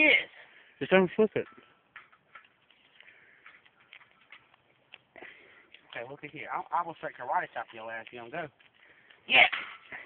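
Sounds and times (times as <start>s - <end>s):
faint irregular clicks: 1.4s - 6.0s.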